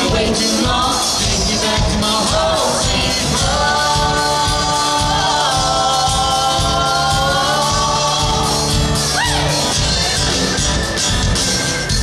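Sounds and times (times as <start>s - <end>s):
voices singing in harmony: 0.0s - 10.6s
live country band playing: 0.0s - 12.0s.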